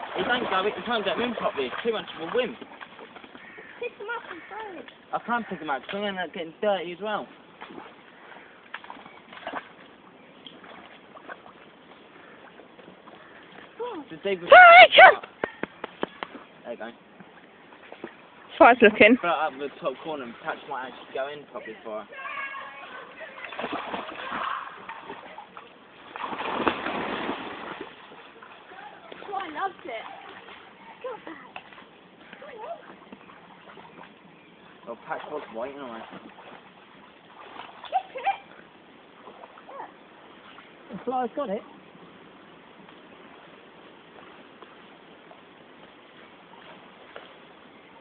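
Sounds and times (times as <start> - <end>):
dog splashing in water: 0.0 - 4.9, 7.6 - 11.7, 22.8 - 34.2, 35.0 - 38.4
stream water running: 0.0 - 48.0.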